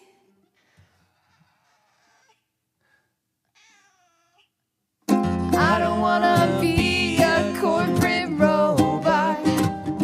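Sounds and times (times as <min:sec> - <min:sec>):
cat meowing: 0:03.5 - 0:04.6.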